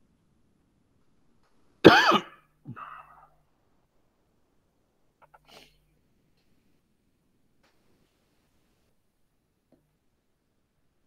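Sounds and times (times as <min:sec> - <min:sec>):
person coughing: 0:01.8 - 0:03.3
throat clearing: 0:01.8 - 0:03.3.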